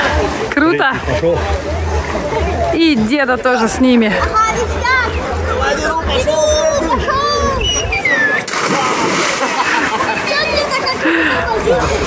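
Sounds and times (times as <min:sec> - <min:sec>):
big splash into water: 0:08.4 - 0:10.1
churned water hissing: 0:08.4 - 0:12.0.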